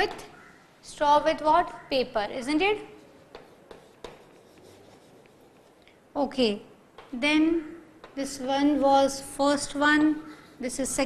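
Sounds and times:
chalk scratching on blackboard: 2.7 - 5.8
chalk tapping on blackboard: 2.8 - 5.8, 8.0 - 8.3.

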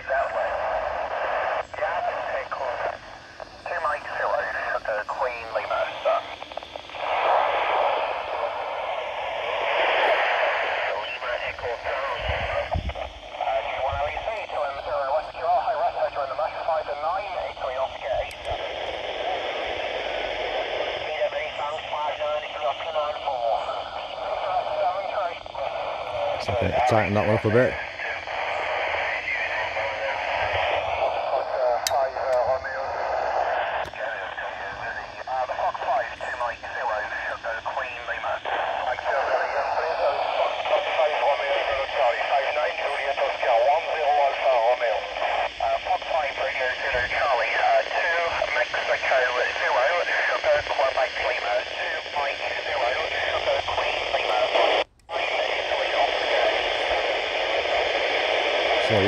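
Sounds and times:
hissy radio speech: 0.0 - 59.0.

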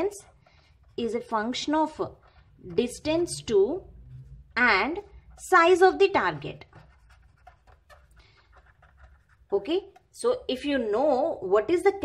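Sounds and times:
marker scratching on paper: 0.0 - 10.2.

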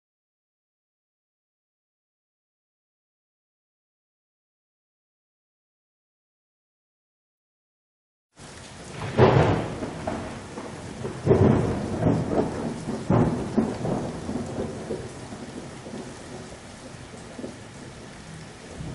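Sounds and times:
steady rain: 8.4 - 18.9
thunder claps: 8.8 - 18.9.

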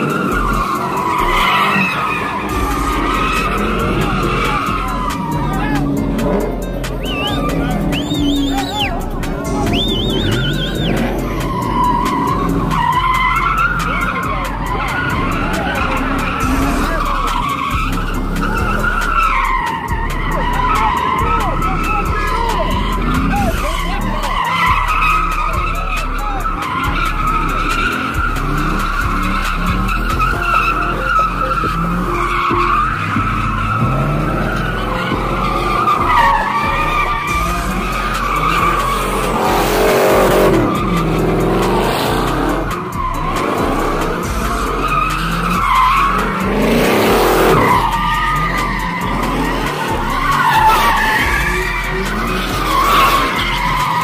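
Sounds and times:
car engine revving: 0.0 - 54.0
tyres squealing: 0.0 - 54.0.

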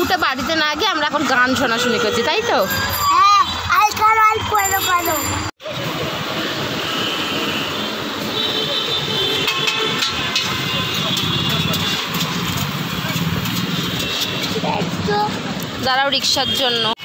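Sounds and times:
city traffic passing: 0.0 - 17.0.

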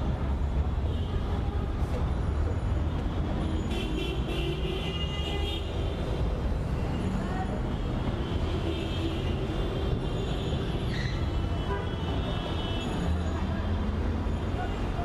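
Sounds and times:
traffic engines rumbling: 0.0 - 15.0.

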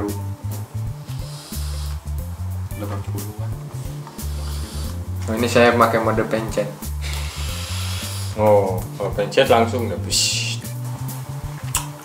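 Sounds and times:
music with repeating bass beat: 0.0 - 12.0
vape hissing: 0.7 - 2.5, 3.7 - 5.2, 6.8 - 8.6.

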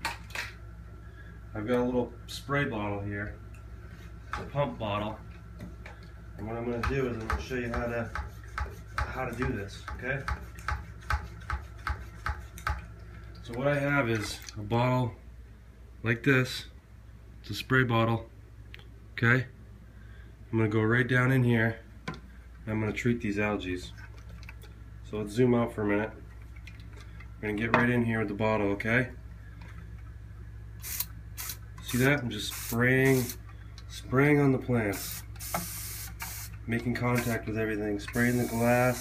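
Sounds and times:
spray bottle hiss: 30.8 - 31.6, 32.5 - 33.4, 35.0 - 36.6, 38.2 - 39.0.

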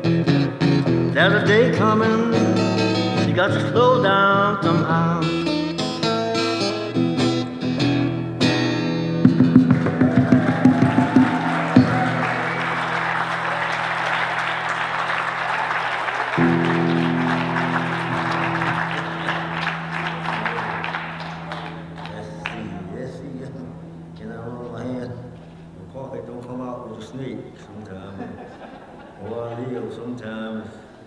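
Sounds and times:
acoustic guitar blues: 0.0 - 13.4, 16.4 - 26.5
audience applause: 9.5 - 22.9.

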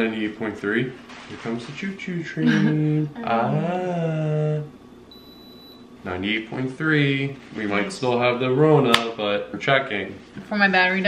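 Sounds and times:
person laughing: 2.4 - 4.6
high-pitched thermometer beep: 5.1 - 5.8.

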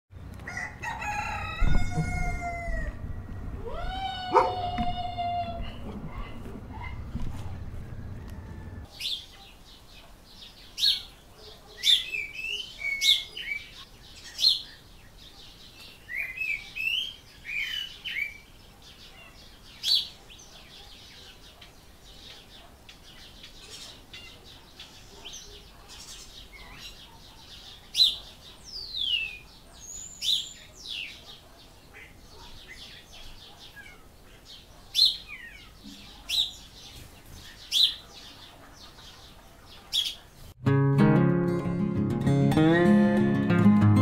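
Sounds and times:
rooster crowing: 0.4 - 6.2, 6.8 - 8.9
small birds chirping: 5.6 - 40.6.

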